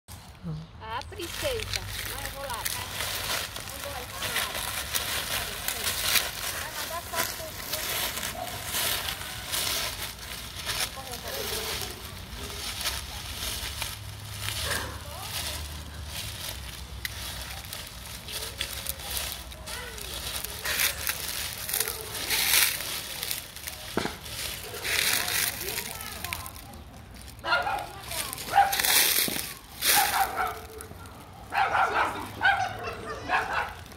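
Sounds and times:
dry leaves crunching and rustling: 0:00.1 - 0:33.9.

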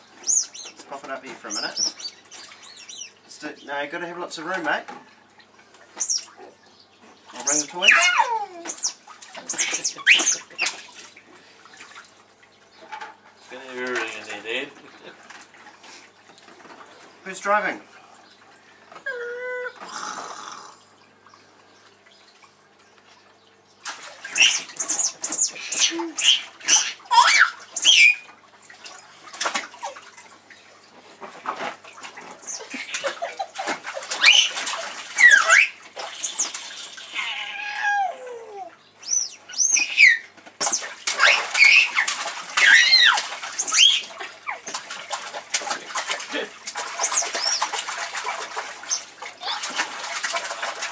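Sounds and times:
water splashing in paddling pool: 0:00.0 - 0:50.9
baby squealing: 0:07.7 - 0:09.0, 0:24.4 - 0:28.2, 0:35.2 - 0:44.6.

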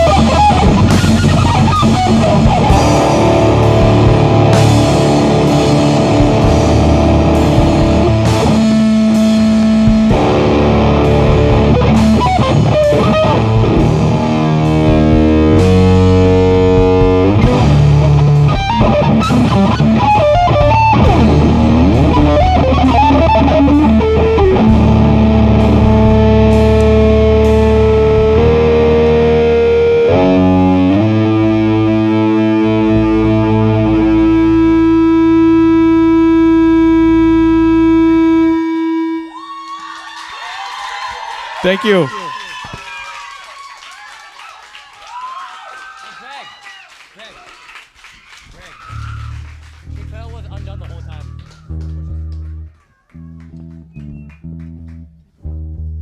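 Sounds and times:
drum kit: 0:00.0 - 0:34.9
distorted electric guitar: 0:00.0 - 0:39.3
bass guitar: 0:00.0 - 0:39.4, 0:48.8 - 0:56.0.

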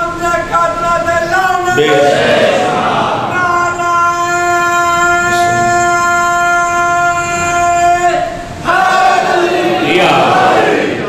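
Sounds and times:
man singing long note over loudspeakers: 0:01.7 - 0:02.6, 0:03.3 - 0:08.6.

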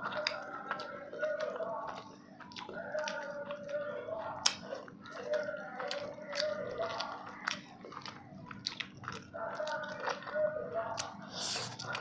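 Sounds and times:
wet chewing: 0:00.0 - 0:12.0.

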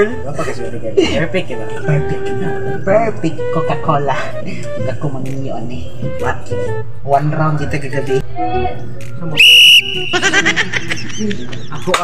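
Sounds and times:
sharp high whistle: 0:09.4 - 0:10.5.

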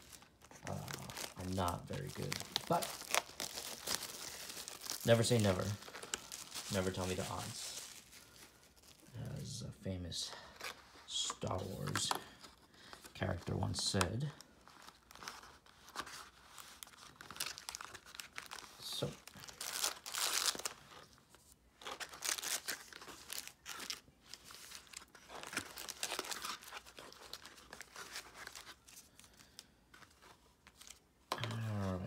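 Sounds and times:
card packs crinkling: 0:00.0 - 0:32.0.

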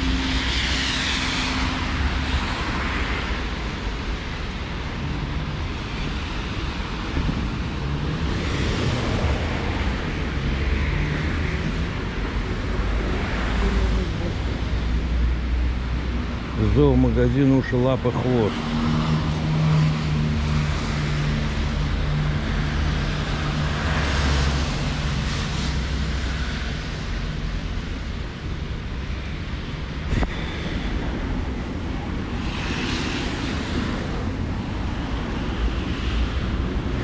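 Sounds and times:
wind rumbling on microphone: 0:00.0 - 0:37.0.

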